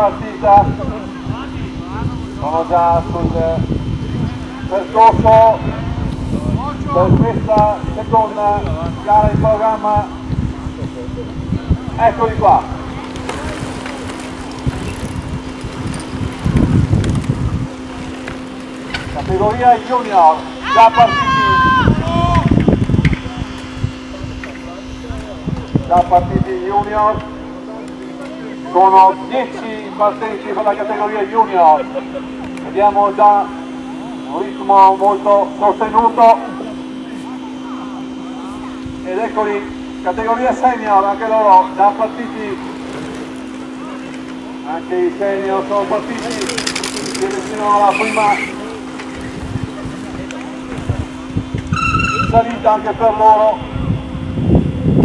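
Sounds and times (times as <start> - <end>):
wind buffeting the microphone: 0.0 - 19.8, 21.2 - 27.5, 49.0 - 52.4, 53.6 - 55.0
faint distant voices: 0.0 - 54.4
steady low hum: 0.0 - 55.0.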